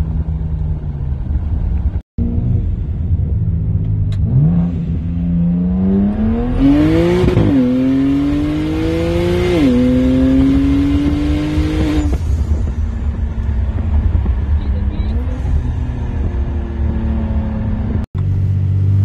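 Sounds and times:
car engine accelerating through gears: 1.8s - 19.0s.

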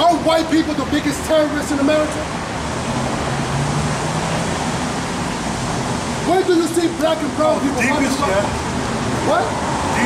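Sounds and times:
traffic noise: 0.0s - 10.0s
vehicle engine hum: 0.0s - 10.0s.

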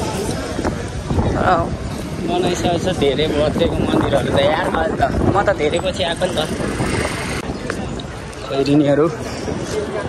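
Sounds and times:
passers-by voices: 0.0s - 10.0s
steady rushing noise: 0.0s - 10.0s
traffic: 0.0s - 10.0s.

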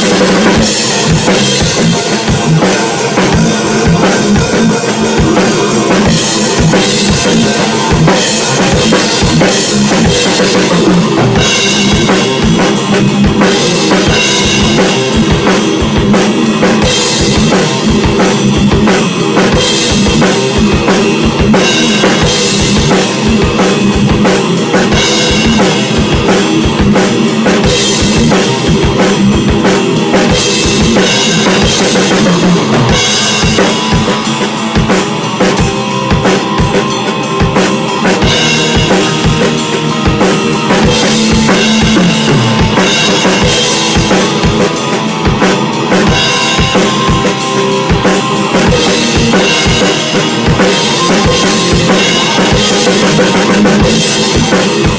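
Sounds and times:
fast kick drum and snare hits: 40.1s - 54.9s.

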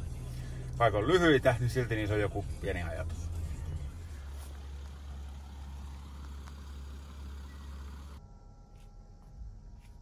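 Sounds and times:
van engine idling: 0.0s - 10.0s.

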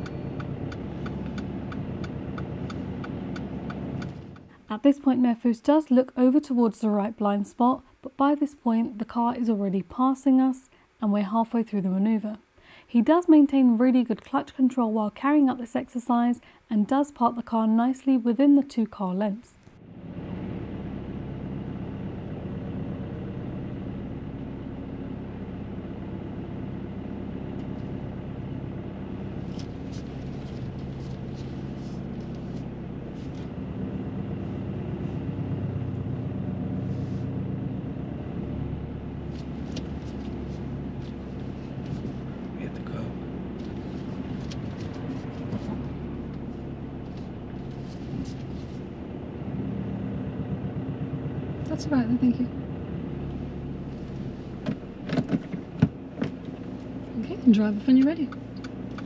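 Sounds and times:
car engine humming at low revs: 0.0s - 7.4s, 19.7s - 59.0s.

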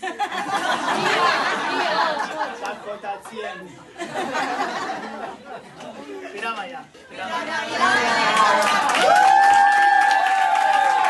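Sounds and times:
group of people talking: 0.8s - 9.0s.

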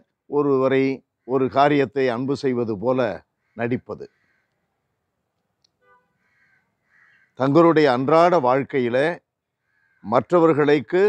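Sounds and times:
faint bird call: 5.9s - 7.4s.

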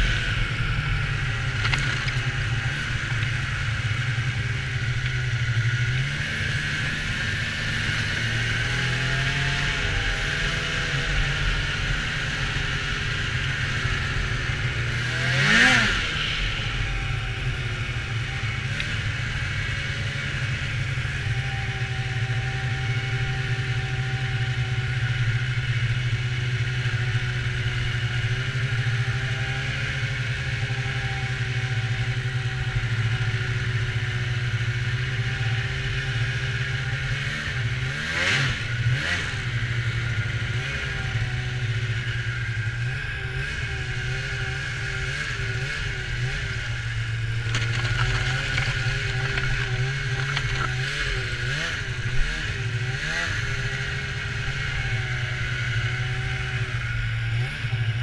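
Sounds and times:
snowmobile engine running: 0.0s - 58.0s.

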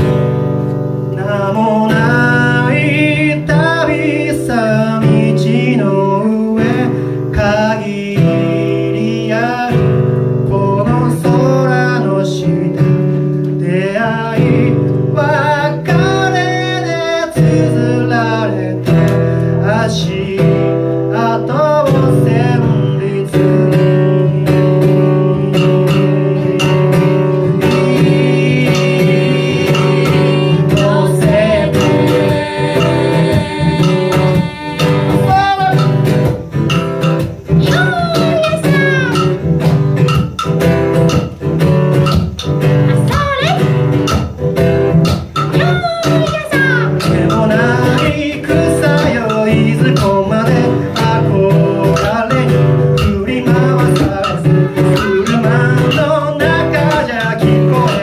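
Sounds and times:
acoustic guitar strumming: 0.0s - 58.0s
person singing: 1.1s - 39.4s, 42.0s - 43.8s, 45.4s - 58.0s
sharp percussive clicks: 24.6s - 58.0s.

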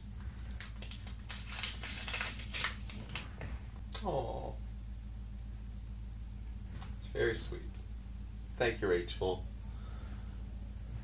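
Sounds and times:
paper envelope tearing and rustling: 0.4s - 3.3s.

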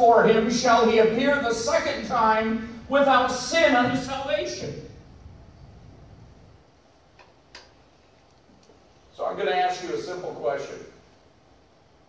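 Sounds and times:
faint clicks: 7.1s - 8.8s.

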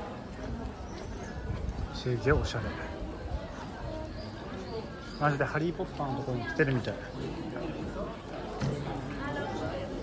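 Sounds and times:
chatter of passers-by: 0.0s - 10.0s.

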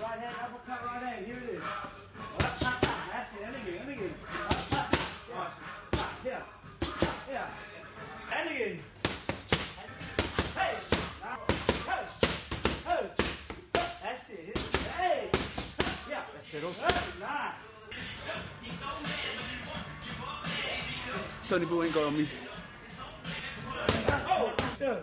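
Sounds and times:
hip hop music: 0.0s - 13.2s, 13.8s - 25.0s
boxing gloves hitting focus mitts: 2.4s - 3.1s, 4.5s - 5.2s, 9.0s - 16.0s, 16.8s - 17.2s, 23.9s - 24.8s.

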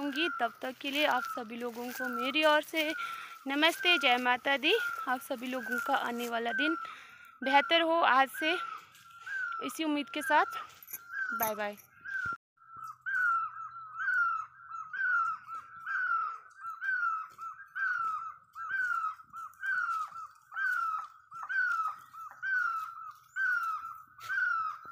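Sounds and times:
animal's high call: 10.5s - 24.9s.

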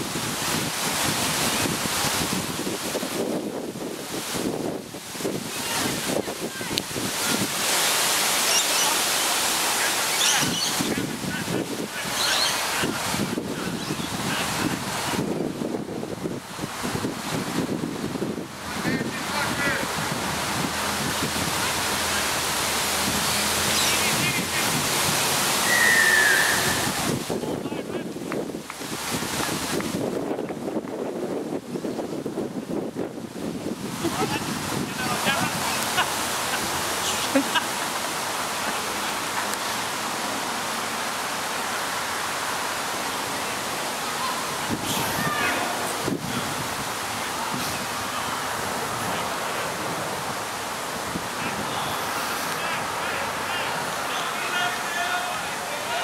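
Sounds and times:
wind rushing on microphone: 0.0s - 54.1s
short falling whistle-like tone: 25.6s - 26.9s
players calling and shouting: 25.6s - 28.0s, 43.9s - 46.1s, 52.5s - 56.0s.

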